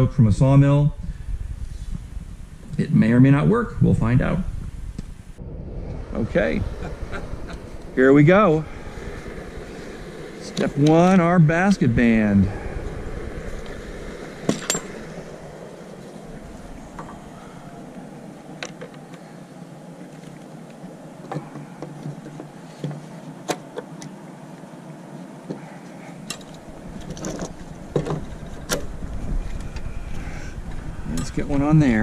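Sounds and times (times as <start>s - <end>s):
low rushing background: 0.0s - 23.4s, 24.1s - 32.0s.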